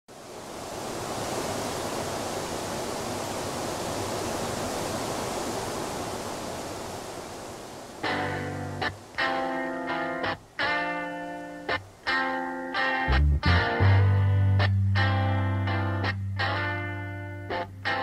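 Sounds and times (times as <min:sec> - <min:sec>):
rushing wind: 0:00.1 - 0:12.0.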